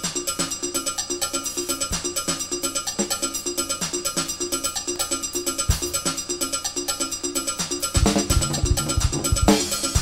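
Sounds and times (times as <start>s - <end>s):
drum and cymbal hits: 0.0s - 10.0s
ringing metal percussion: 0.4s - 10.0s.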